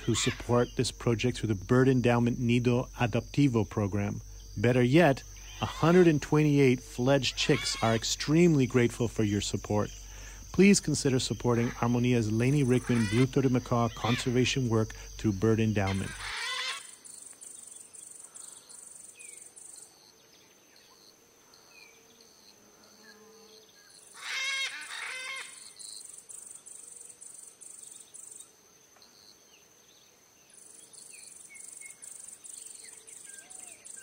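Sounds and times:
macaw calls: 0.0s - 0.8s, 5.2s - 6.3s, 7.2s - 8.2s, 11.4s - 14.6s, 15.8s - 17.4s, 24.1s - 26.1s
insect pulsing: 0.0s - 20.1s.

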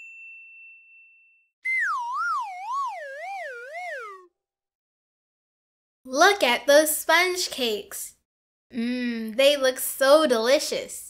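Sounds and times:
bright ding: 0.0s - 1.5s
warbling synthetic tone: 1.6s - 4.3s.

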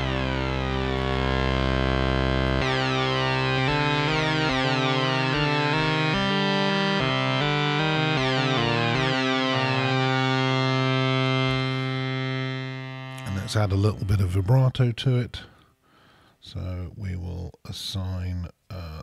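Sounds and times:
synthesizer lead melody: 0.0s - 14.7s.

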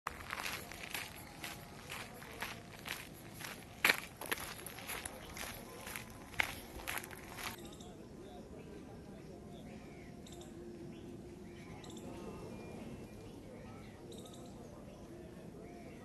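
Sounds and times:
footsteps on dirt path: 0.1s - 7.6s.

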